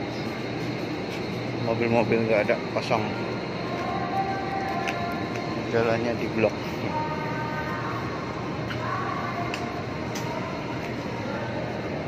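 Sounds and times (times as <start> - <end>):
steady rumbling background noise: 0.0 - 12.0.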